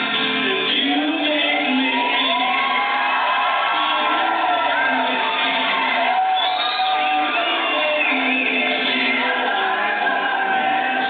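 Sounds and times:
musical accompaniment: 0.0 - 11.0
person singing into a microphone: 0.0 - 11.0.

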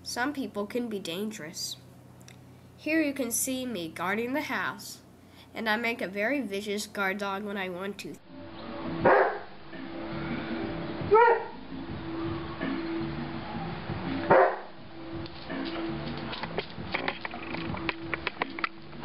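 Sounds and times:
dog barking: 9.0 - 9.5, 11.1 - 11.6, 14.3 - 14.7.

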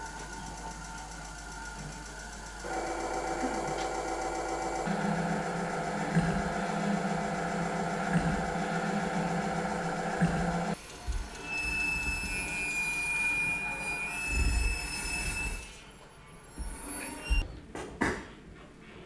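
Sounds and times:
mechanical electronic buzz: 0.0 - 17.4
strong low hum: 4.8 - 11.2.

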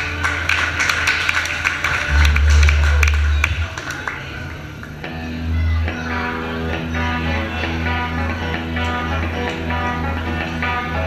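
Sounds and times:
crowd clapping: 0.0 - 5.0
crowd voices: 2.0 - 10.5
upright double bass: 2.1 - 4.1
guitars playing: 2.1 - 4.3.

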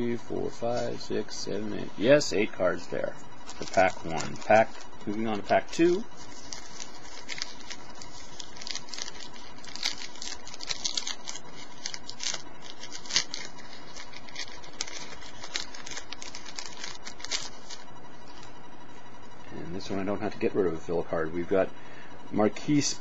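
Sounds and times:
wrapper crinkling and tearing: 3.4 - 4.8, 6.2 - 18.5.

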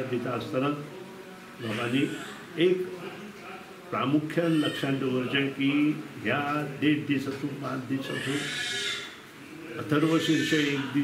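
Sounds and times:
man speaking: 1.6 - 2.9, 3.9 - 8.6, 9.8 - 11.0.

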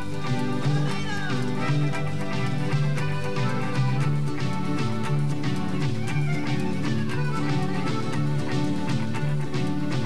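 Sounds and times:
acoustic guitar: 0.0 - 10.0
bass line: 0.0 - 10.0.

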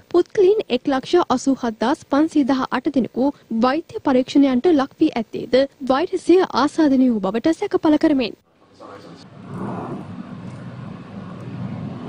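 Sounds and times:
faint murmur of background noise: 0.0 - 12.0
low hum: 9.0 - 12.0.

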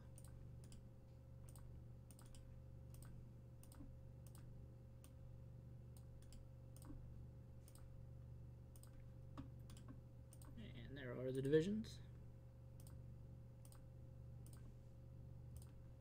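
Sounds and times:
computer mouse clicks: 0.0 - 5.2, 5.9 - 7.0, 7.6 - 7.9, 8.7 - 10.6, 12.8 - 13.0, 13.6 - 14.7, 15.5 - 15.8
low electrical hum: 0.0 - 16.0.

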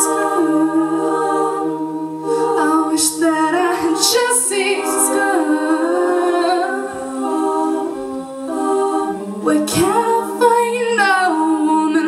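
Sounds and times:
women singing a cappella harmony: 0.0 - 12.0.

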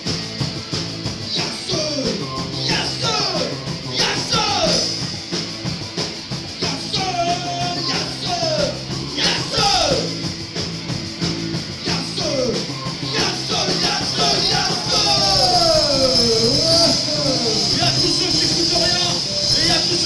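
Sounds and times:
drums: 0.0 - 20.0
electric guitar: 0.0 - 20.0.

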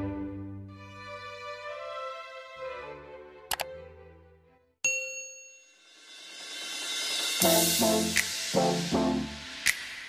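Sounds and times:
background music: 0.0 - 4.8, 7.4 - 10.0
notification bell ding: 4.8 - 5.9.

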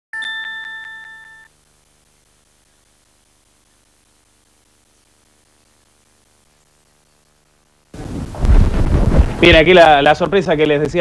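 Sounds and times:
faint steady hum: 0.2 - 11.0.

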